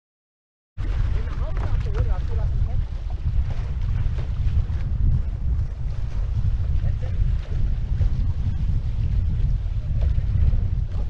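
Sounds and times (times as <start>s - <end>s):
water rushing along hulls: 0.8s - 11.0s
wind buffeting microphone: 0.8s - 11.0s.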